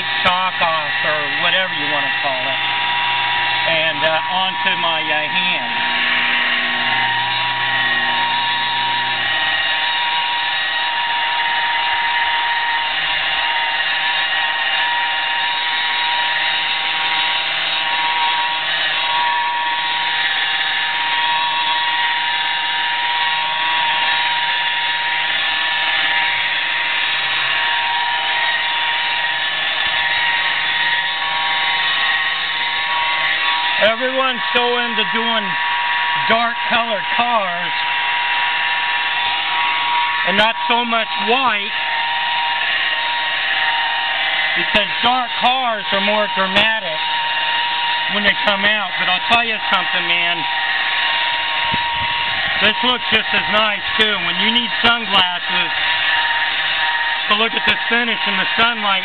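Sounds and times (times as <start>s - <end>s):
electric polisher whining: 0.0s - 59.0s.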